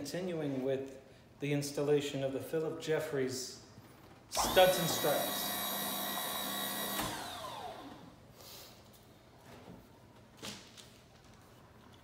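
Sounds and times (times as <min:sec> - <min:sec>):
small electric motor whining: 0:04.4 - 0:08.1.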